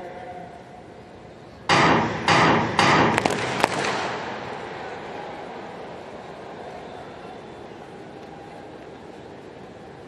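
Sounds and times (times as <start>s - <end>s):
starting gun bangs: 1.7s - 4.9s.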